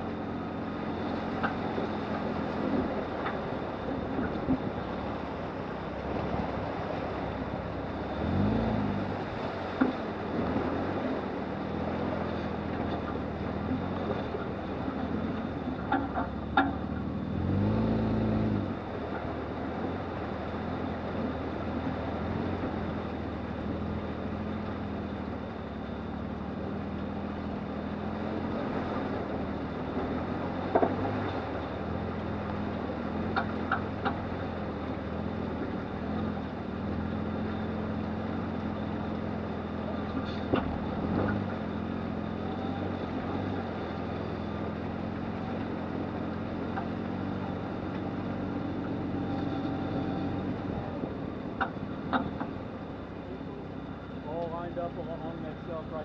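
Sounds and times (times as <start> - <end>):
engine running at slow crawl: 0.0 - 56.0.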